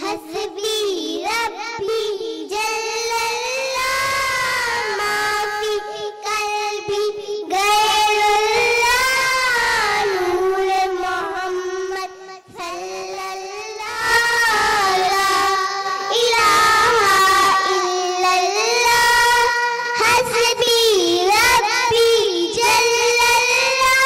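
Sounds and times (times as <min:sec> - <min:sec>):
girls singing devotional song: 0:00.0 - 0:24.0.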